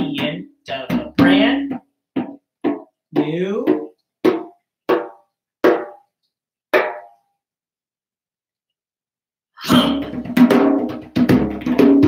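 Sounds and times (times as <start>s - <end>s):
hand strikes on a djembe: 0.0s - 6.0s, 9.7s - 12.0s.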